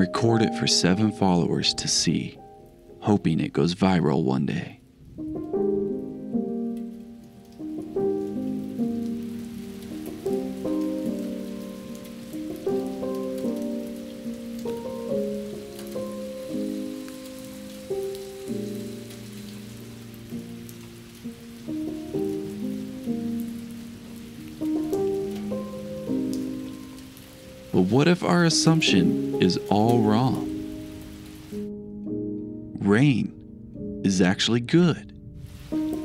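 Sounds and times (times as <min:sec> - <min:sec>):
steady rain falling: 0:00.0 - 0:32.2, 0:34.1 - 0:36.0
slow piano music: 0:00.0 - 0:36.0.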